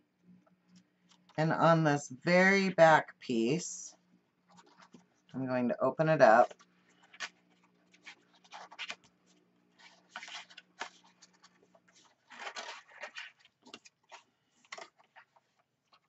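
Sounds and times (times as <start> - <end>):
cardstock rustling and scraping: 4.5 - 5.2, 6.3 - 16.0.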